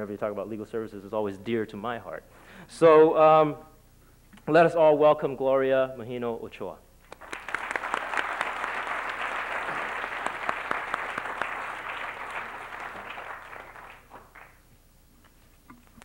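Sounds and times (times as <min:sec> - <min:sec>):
audience applauding: 0:07.1 - 0:14.7.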